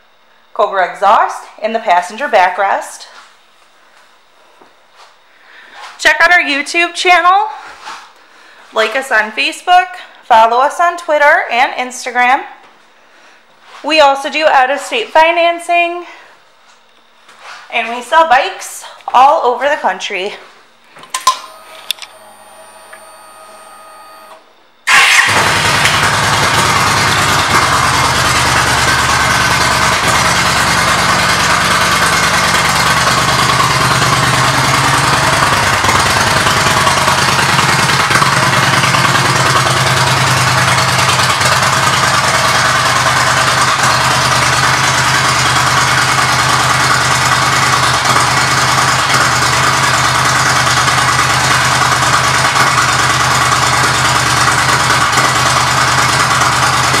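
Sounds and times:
motorcycle engine idling: 25.2 - 57.0.

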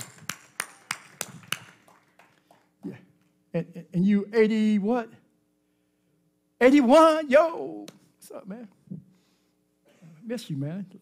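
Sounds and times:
hand claps: 0.0 - 3.3.

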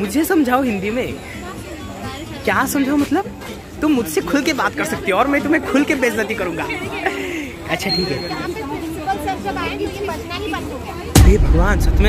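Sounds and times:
voices chattering: 0.0 - 12.0.

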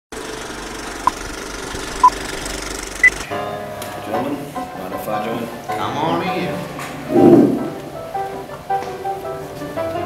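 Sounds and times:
music: 3.2 - 10.0.

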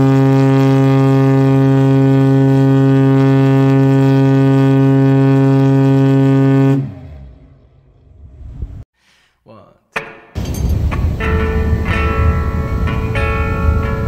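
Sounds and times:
ship's whistle long deep blast: 0.0 - 7.2.

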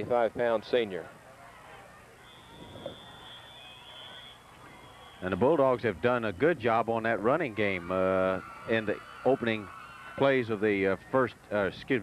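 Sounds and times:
faint background noise: 0.0 - 12.0
high-pitched steady tone: 2.0 - 5.8.

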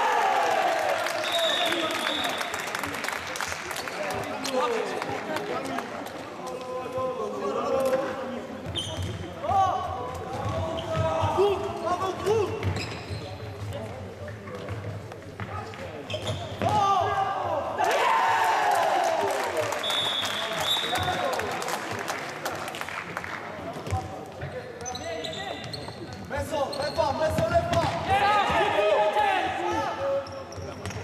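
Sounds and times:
shoes squeaking: 8.6 - 9.3, 10.3 - 13.7, 15.5 - 16.6, 24.8 - 27.4
players shouting: 16.6 - 19.5.

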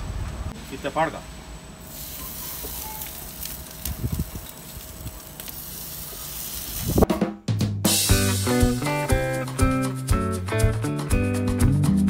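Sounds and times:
chicken sizzling on grill: 1.8 - 7.1
background music with drum beat: 7.0 - 12.0.

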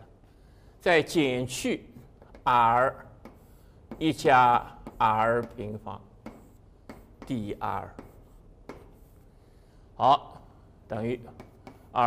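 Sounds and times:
chalk strokes on blackboard: 2.7 - 9.7, 11.3 - 12.0.

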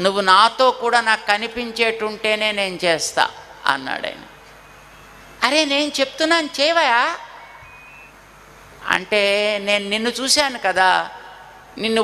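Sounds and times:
short steady high tone: 7.4 - 8.2.

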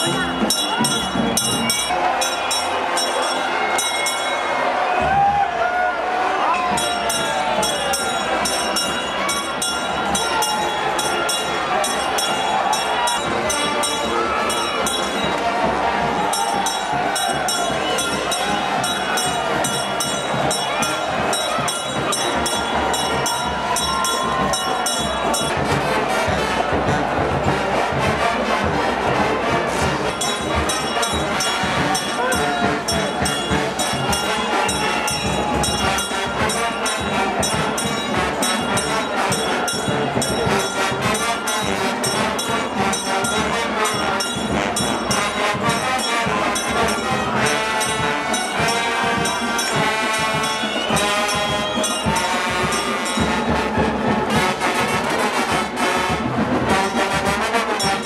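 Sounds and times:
brass band playing: 0.0 - 5.4, 6.1 - 58.0
crowd clapping and cheering: 0.0 - 58.0.

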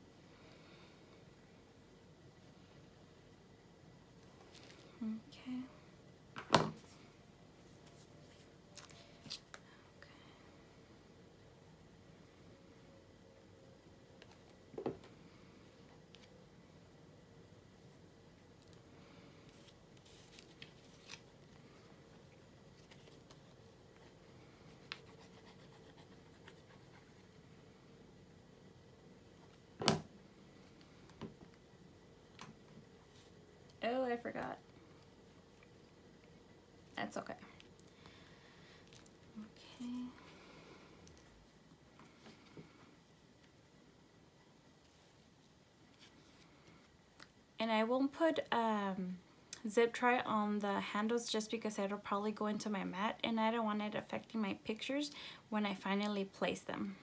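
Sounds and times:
faint paper rubbing: 19.4 - 21.2.

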